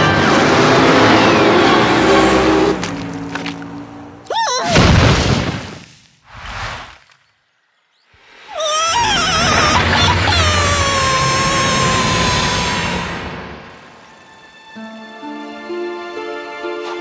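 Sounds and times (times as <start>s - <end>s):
cartoon score: 8.5s - 13.1s.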